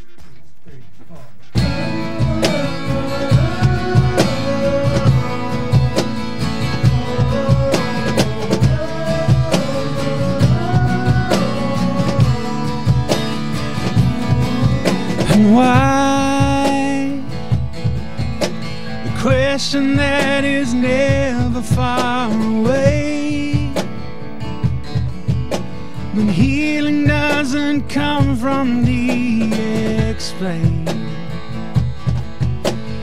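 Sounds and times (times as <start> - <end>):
acoustic guitar strumming: 1.5 - 33.0.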